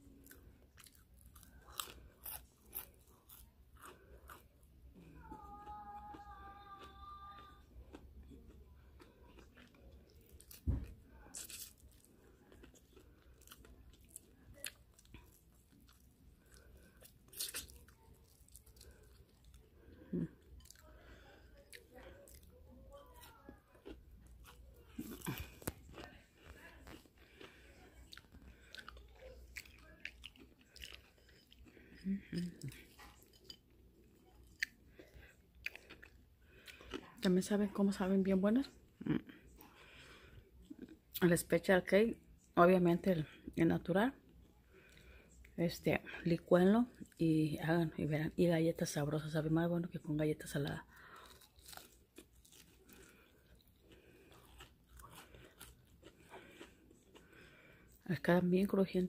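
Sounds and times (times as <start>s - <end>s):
crunchy biting and chewing: 0.2s - 4.6s, 7.8s - 19.7s, 23.2s - 33.6s, 34.3s - 37.2s, 51.0s - 58.0s.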